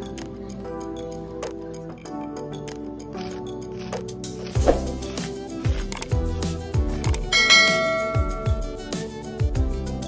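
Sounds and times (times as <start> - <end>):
background music with steady beat: 0.0 - 10.0
bell-like chime: 7.3 - 9.0.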